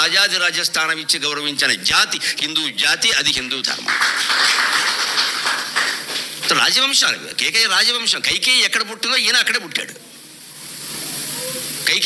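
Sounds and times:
audience applause: 3.8s - 6.7s.

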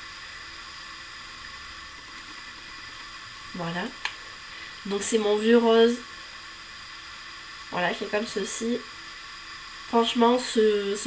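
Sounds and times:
background hiss: 0.0s - 11.0s
faint constant whine: 0.0s - 11.0s.

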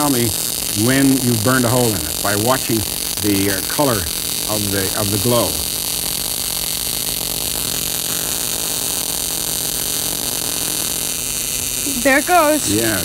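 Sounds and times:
electrical arcing hiss and buzz: 0.0s - 13.0s
low mains hum: 0.0s - 13.0s.

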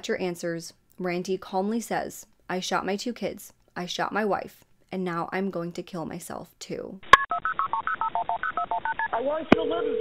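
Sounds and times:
fast two-note phone beeps: 7.2s - 10.0s.

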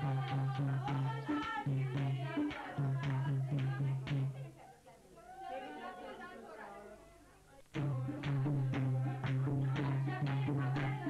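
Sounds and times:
indistinct talking voices: 1.0s - 11.0s.

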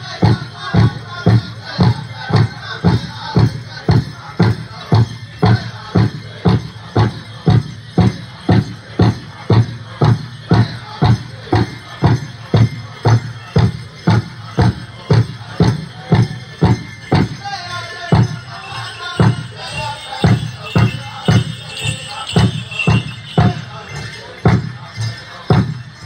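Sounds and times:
singers' voices: 0.0s - 26.0s.

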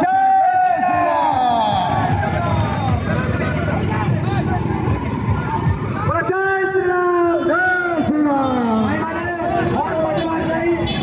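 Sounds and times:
crowd talking and calling out: 0.0s - 11.0s
motorcycle and car engines running: 0.8s - 11.0s.

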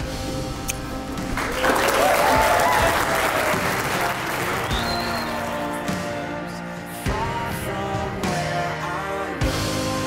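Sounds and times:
soft background music: 0.0s - 10.0s
guests applauding and cheering: 1.3s - 5.9s
person whooping: 1.8s - 3.6s.

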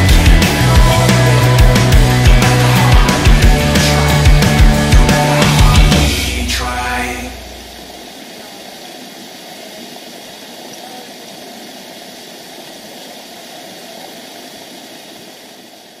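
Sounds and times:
waterfall rushing: 0.0s - 16.0s.

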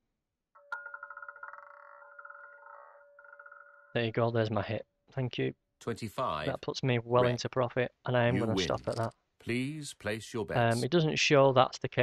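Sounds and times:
roulette ball rattling: 0.6s - 4.0s.

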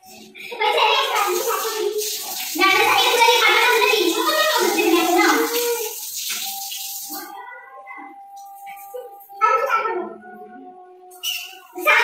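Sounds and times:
shower water spraying: 0.0s - 7.3s
voices: 0.0s - 12.0s
background music: 6.5s - 12.0s.

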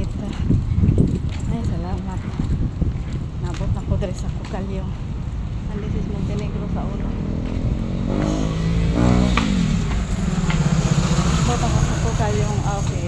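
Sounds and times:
background voices: 3.4s - 8.9s, 9.6s - 13.0s
vehicle engine passing close: 5.8s - 13.0s
engine running steadily: 6.0s - 13.0s.

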